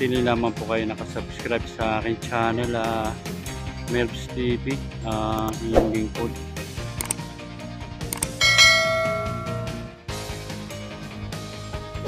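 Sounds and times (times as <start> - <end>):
background music: 0.0 - 12.0
quick mouse clicks: 7.0 - 7.2
bright bell ding: 8.4 - 10.0.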